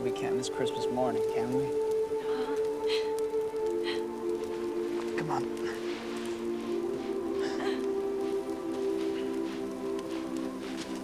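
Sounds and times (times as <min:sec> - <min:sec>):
film score low chords: 0:00.0 - 0:11.0
footsteps crunching in snow: 0:02.8 - 0:11.0.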